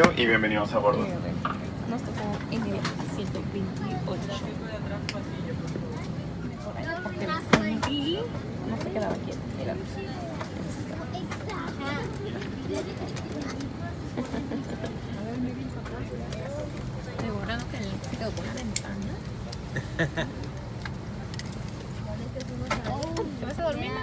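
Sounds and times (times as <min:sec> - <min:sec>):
passengers talking: 0:00.0 - 0:24.0.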